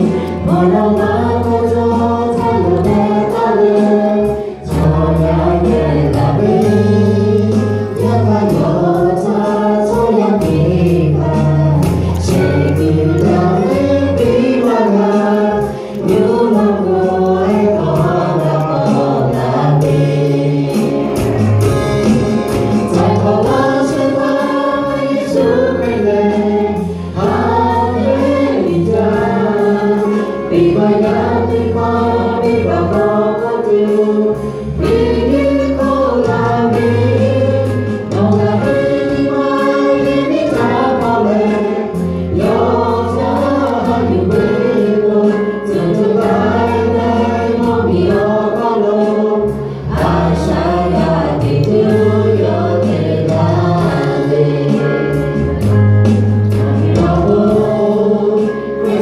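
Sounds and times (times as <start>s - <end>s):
vocal group singing in harmony: 0.0s - 59.0s.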